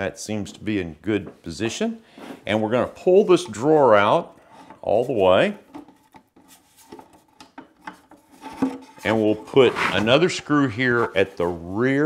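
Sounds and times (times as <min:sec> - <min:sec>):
drawer sliding on metal slides: 0:08.4 - 0:10.7.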